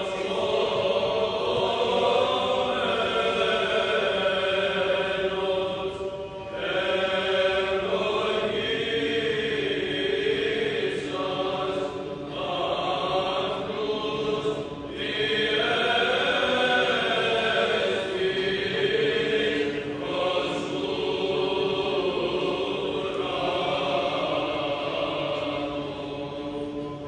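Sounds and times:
male choir chanting: 0.0 - 27.0.

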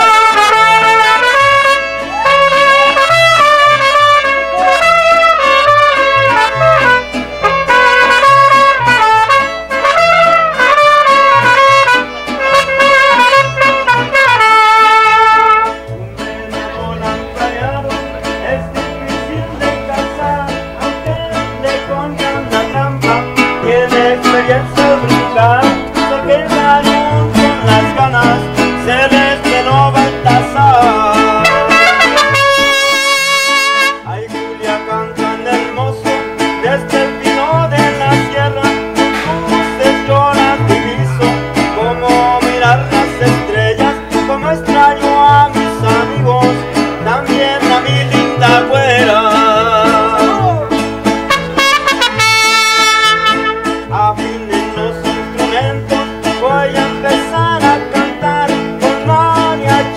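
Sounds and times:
trumpets: 0.0 - 15.8, 30.8 - 34.1, 51.3 - 54.0
plucked bass: 0.0 - 59.9
strummed guitars: 0.0 - 59.9.

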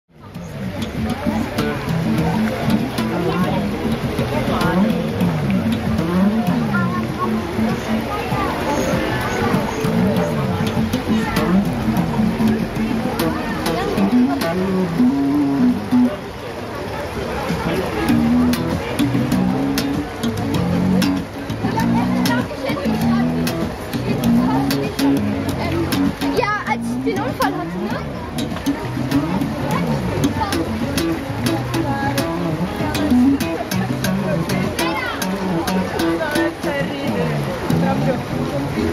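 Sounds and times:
electric bass guitar funk line: 0.1 - 16.4, 17.4 - 38.9.

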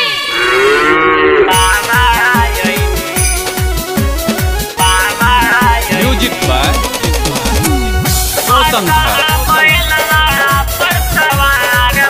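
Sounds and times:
cow mooing: 0.0 - 1.6
music with thumping drum beat: 1.6 - 12.0.

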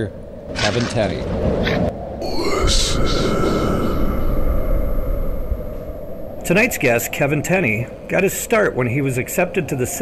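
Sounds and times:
low rumble: 1.2 - 8.4
high rising wail: 2.2 - 7.9.

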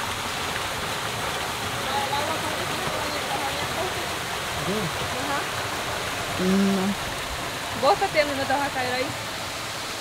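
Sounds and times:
waterfall splashing into a pool: 0.0 - 10.0.

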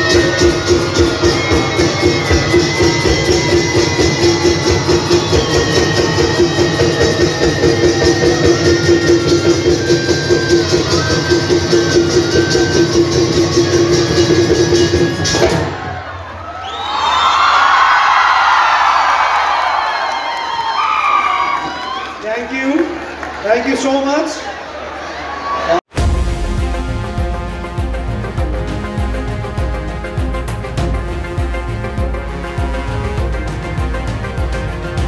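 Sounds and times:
folk music with fast drums: 0.0 - 16.2, 25.9 - 35.0
crowd cheering and shouting: 0.0 - 28.0.

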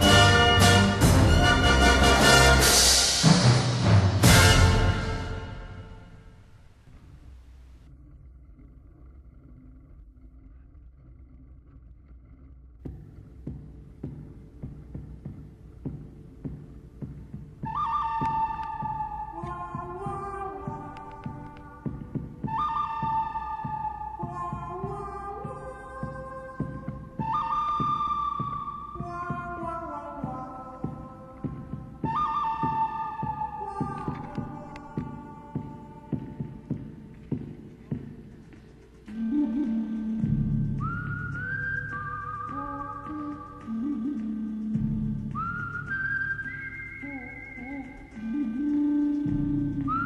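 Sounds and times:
low thumping beat: 12.9 - 46.0, 47.1 - 50.0.

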